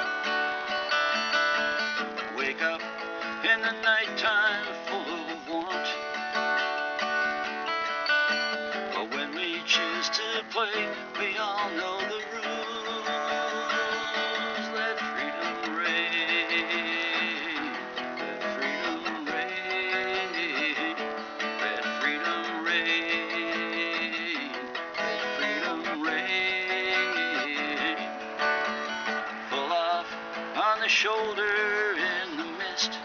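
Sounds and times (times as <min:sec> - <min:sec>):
melodic lead line with bending notes: 0:00.0 - 0:33.0
strummed acoustic guitar chords: 0:00.0 - 0:33.0.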